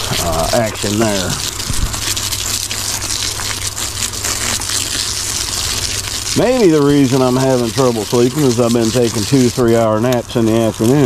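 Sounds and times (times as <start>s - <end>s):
water spraying from garden hose: 0.0s - 11.0s.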